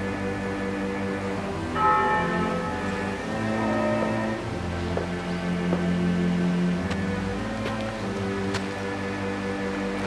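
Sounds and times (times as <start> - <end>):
film score with low tones: 0.0 - 10.0
bell struck and ringing: 1.8 - 4.4.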